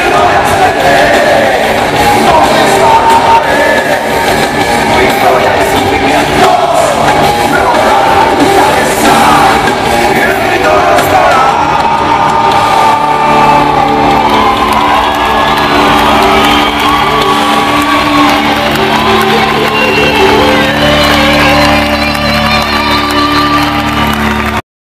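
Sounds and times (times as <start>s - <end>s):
rock band holding loud chord: 0.0s - 24.6s
audience cheering and whooping: 0.1s - 24.6s.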